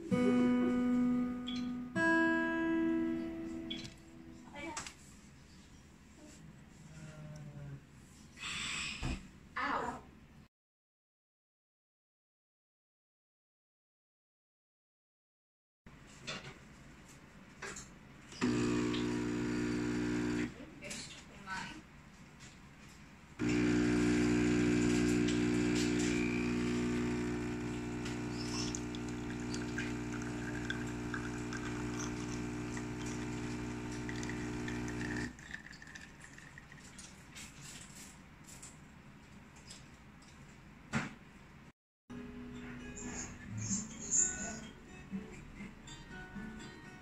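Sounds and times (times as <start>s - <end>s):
espresso machine pump humming: 18.4s - 20.5s, 23.4s - 36.5s.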